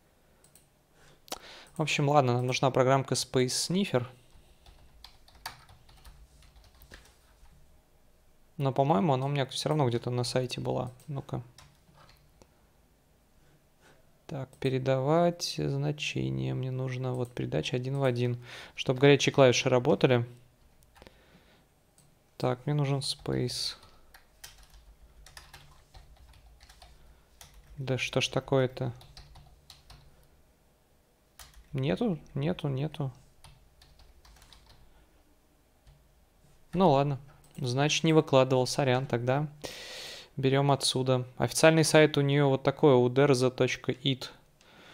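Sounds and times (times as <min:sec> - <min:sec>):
faint computer keyboard keystrokes: 0:00.4 - 0:00.7, 0:04.6 - 0:07.2, 0:23.8 - 0:27.8, 0:28.9 - 0:30.2, 0:31.4 - 0:31.8, 0:33.4 - 0:34.9.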